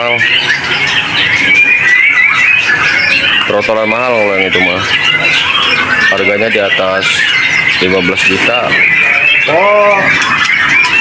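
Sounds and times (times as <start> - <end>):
young birds chirping: 0.0 - 11.0.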